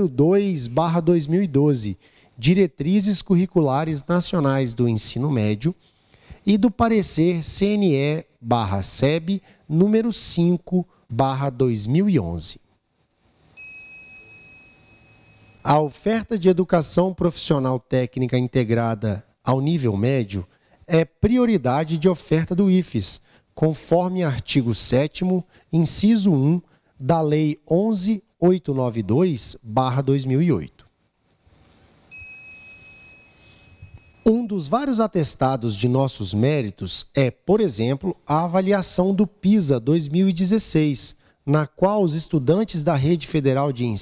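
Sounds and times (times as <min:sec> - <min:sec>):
high chime ringing: 0:13.6 - 0:15.8, 0:32.1 - 0:34.5.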